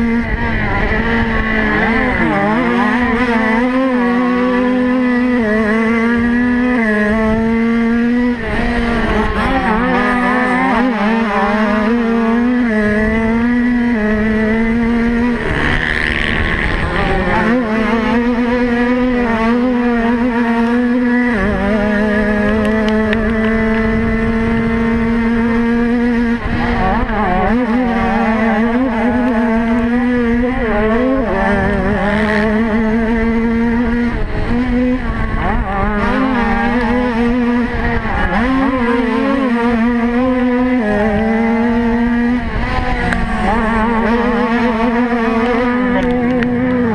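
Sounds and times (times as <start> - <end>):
dirt bike engine revving: 0.0 - 46.9.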